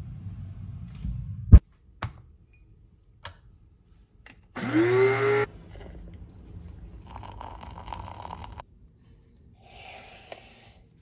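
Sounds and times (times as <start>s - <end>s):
coffee grinder motor whirring: 4.6s - 5.5s.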